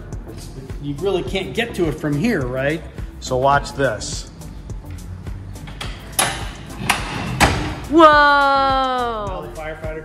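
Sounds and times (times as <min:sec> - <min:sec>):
metal rack sliding rattle: 0:05.8 - 0:07.8.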